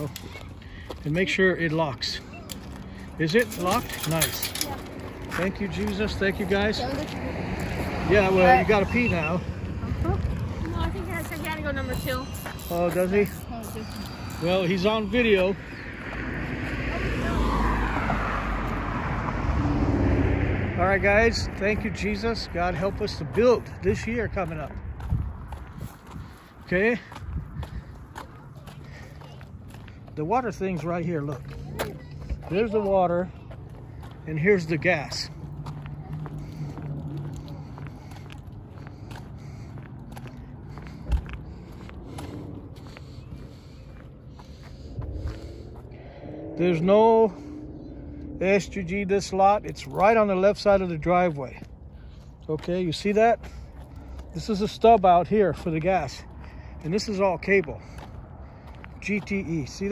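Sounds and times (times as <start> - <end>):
footsteps on pavement: 0.0 - 19.0, 20.2 - 48.4, 49.3 - 59.9
car passing by: 1.0 - 11.3, 12.6 - 25.5, 28.9 - 51.0.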